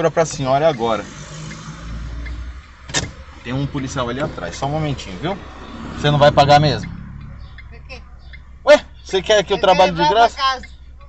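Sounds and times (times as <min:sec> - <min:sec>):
low rumble inside car cabin: 0:02.0 - 0:11.0.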